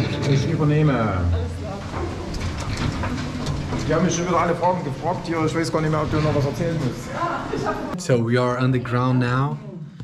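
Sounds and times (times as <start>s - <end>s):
metal clanks and rattles: 1.3s - 7.0s.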